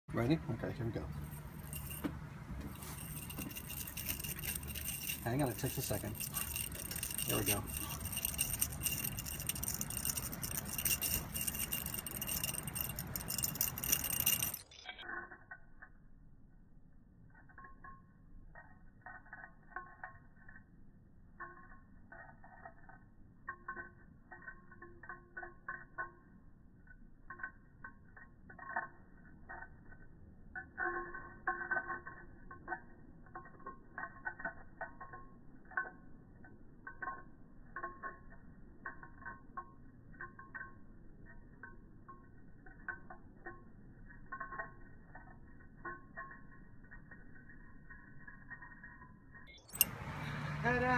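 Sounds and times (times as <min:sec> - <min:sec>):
bead chain rattling against glass: 0:00.1 - 0:16.0, 0:17.4 - 0:50.9
short ringing tones: 0:01.0 - 0:15.8, 0:30.6 - 0:50.9.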